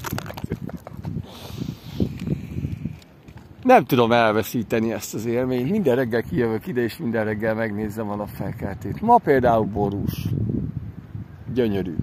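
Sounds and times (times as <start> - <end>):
dog breathing into microphone: 1.0 - 3.0
hissing rustle: 1.1 - 3.6.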